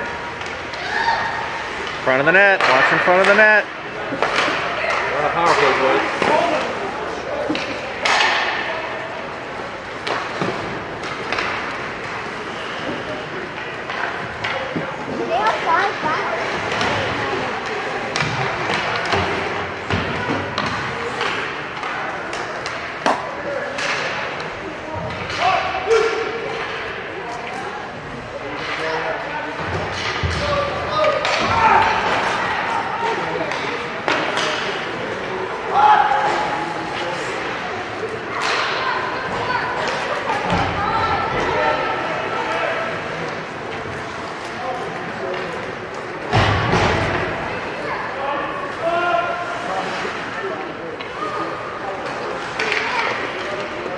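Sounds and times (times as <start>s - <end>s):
hockey sticks and puck clacking: 0.0s - 27.6s, 28.5s - 47.8s, 48.7s - 53.9s.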